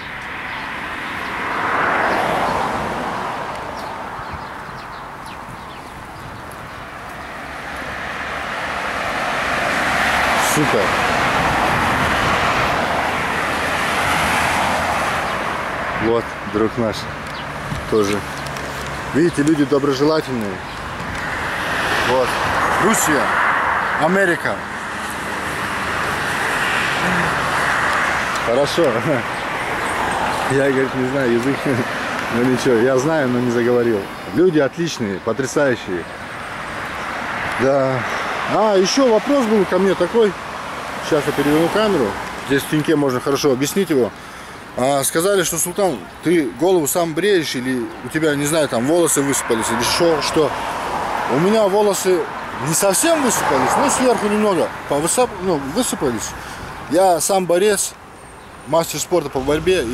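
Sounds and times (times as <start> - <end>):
passing vehicle rushing: 0.0 - 6.2, 6.9 - 46.0, 46.6 - 57.9, 58.6 - 59.9
car driving past: 59.2 - 59.9.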